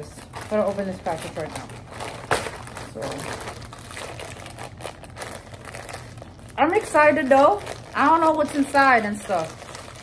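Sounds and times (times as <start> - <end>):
plastic mailer bag crinkling: 0.0 - 10.0.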